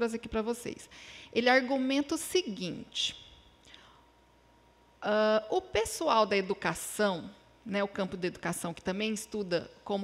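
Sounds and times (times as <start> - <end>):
woman speaking: 0.0 - 3.3, 5.0 - 10.0
faint breath: 0.9 - 1.4, 3.6 - 4.2.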